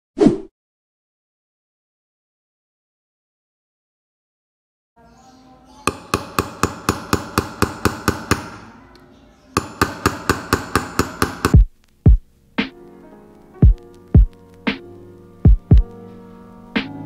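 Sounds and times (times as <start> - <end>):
background music: 5.0 - 17.0
hammer tapping nail into plastic: 5.9 - 8.7, 9.6 - 11.7.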